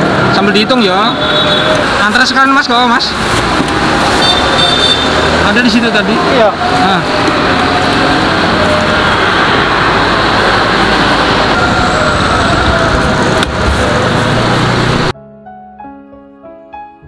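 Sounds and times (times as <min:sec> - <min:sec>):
road traffic engines: 0:00.0 - 0:15.2.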